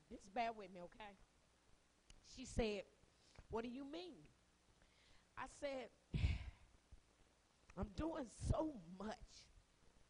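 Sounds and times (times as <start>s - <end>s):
sigh into a microphone: 6.1s - 6.7s.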